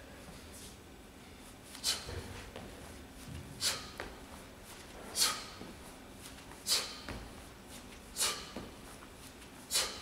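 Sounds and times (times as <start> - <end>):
sharp hissing breaths: 1.8 - 2.2, 3.6 - 4.0, 5.1 - 5.6, 6.6 - 7.2, 8.1 - 8.7, 9.7 - 10.0.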